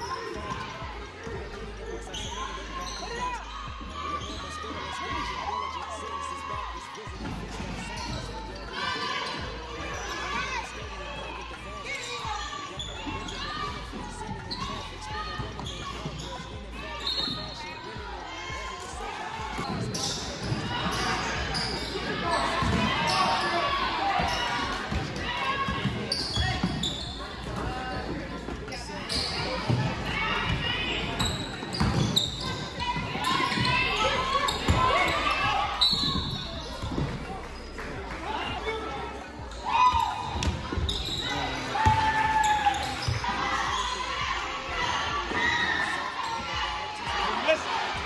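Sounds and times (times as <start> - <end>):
indistinct voices echoing in hall: 0.0 - 48.0.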